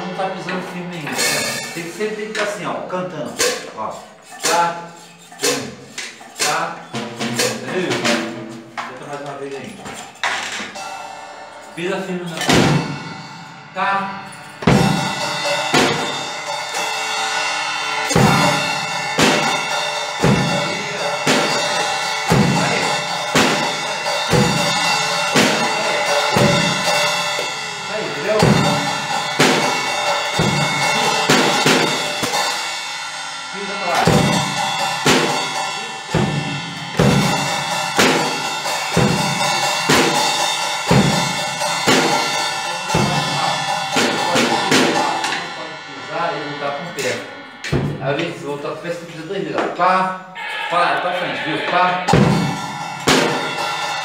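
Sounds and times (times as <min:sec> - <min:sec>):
cymbal ringing: 0:00.0 - 0:54.0
bass drum strokes: 0:10.8 - 0:49.8, 0:52.0 - 0:54.0
snare drum hits: 0:20.2 - 0:24.7, 0:52.1 - 0:53.8.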